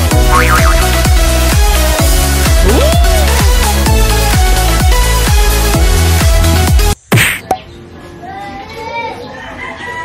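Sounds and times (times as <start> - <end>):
rooster crowing: 9.4 - 10.0.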